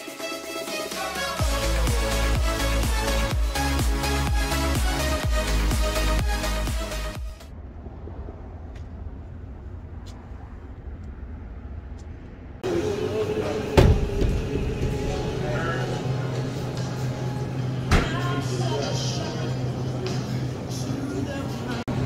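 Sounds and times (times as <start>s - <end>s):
low outdoor rumble: 7.4s - 22.0s
restaurant ambience hum: 12.1s - 22.0s.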